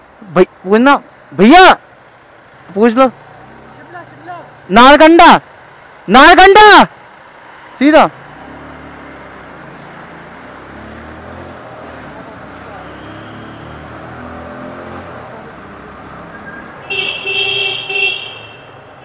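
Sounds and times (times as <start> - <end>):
traffic noise in tunnel: 0.0 - 19.0
vehicle horn honking: 12.8 - 13.8, 16.8 - 18.8.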